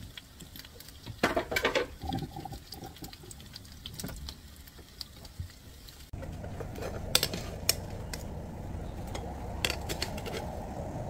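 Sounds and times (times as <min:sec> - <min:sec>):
oil crackling and popping: 0:00.0 - 0:11.0.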